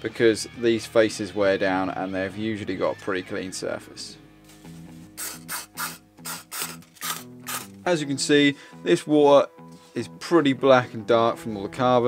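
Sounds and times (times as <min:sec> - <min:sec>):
aerosol spray hissing bursts: 0:05.2 - 0:07.6.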